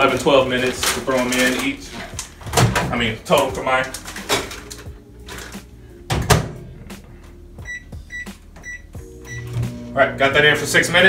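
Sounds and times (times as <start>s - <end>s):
keypad beeps: 7.6s - 9.7s.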